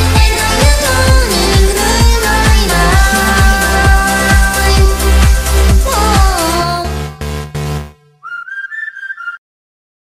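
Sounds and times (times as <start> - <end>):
whistled melody: 8.2 - 9.4.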